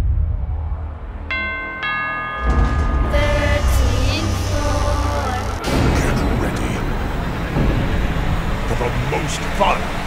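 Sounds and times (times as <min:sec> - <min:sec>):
deep low swell: 0:00.0 - 0:10.0
low drone: 0:00.0 - 0:10.0
bell strikes: 0:01.3 - 0:05.9.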